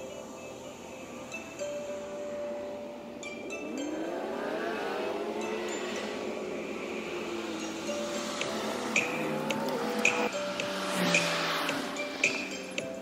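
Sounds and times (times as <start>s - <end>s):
background music: 0.0s - 13.0s
car engine accelerating: 0.8s - 13.0s.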